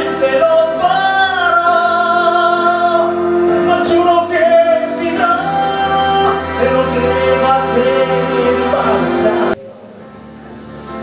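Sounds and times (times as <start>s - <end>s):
man singing into microphone: 0.0s - 10.2s
musical accompaniment: 0.0s - 11.0s.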